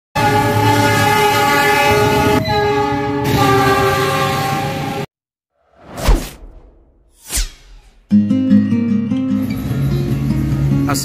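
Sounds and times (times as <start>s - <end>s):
locomotive air horn blast: 0.2s - 5.1s.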